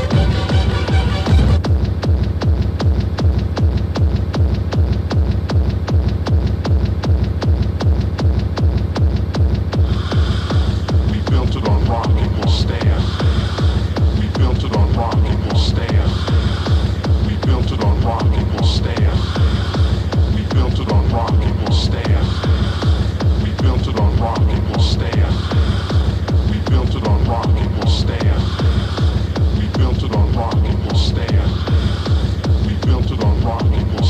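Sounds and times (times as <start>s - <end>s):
high synth riff: 0.0s - 1.6s
fast kick drum beat: 0.0s - 34.0s
heavy bass: 0.0s - 34.0s.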